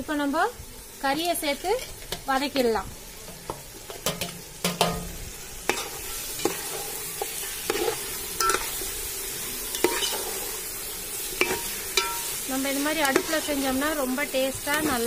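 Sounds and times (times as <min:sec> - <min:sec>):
meat sizzling in a pot: 0:00.0 - 0:15.0
steel ladle scraping a pot: 0:09.6 - 0:10.6, 0:11.4 - 0:13.8.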